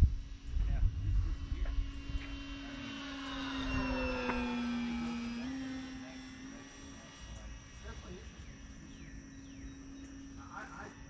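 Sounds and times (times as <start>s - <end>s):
rc plane motor droning: 0.0s - 11.0s.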